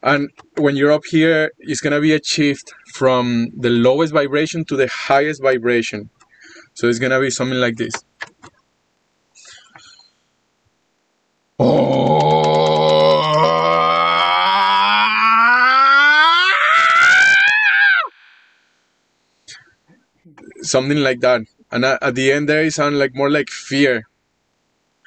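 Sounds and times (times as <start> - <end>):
man's long rising call: 11.6 - 18.7.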